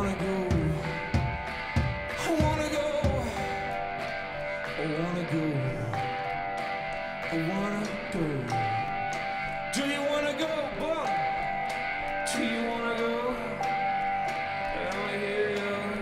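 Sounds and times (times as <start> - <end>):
man singing: 0.0 - 1.5, 2.1 - 3.8, 4.6 - 6.2, 7.2 - 9.0, 9.6 - 11.4, 12.2 - 16.0
sharp percussion hits: 0.0 - 4.8
guitar: 0.0 - 16.0.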